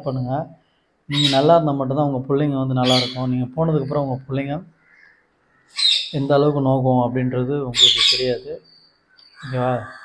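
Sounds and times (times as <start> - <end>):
man speaking: 0.0 - 4.7, 6.2 - 8.6, 9.4 - 10.0.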